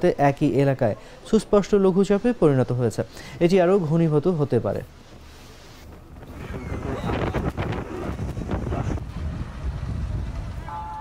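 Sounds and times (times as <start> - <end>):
wind buffeting microphone: 5.9 - 11.0.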